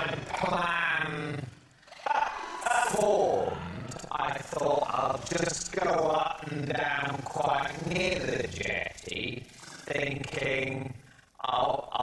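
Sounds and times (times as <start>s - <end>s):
man speaking: 0.0s - 12.0s.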